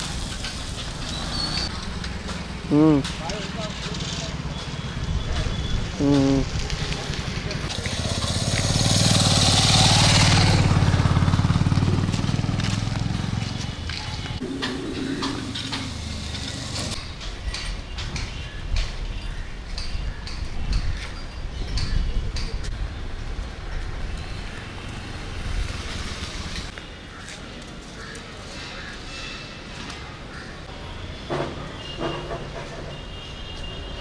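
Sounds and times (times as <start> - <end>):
roadside traffic rumble: 0.0 - 34.0
motorcycle engine passing by: 6.4 - 17.0.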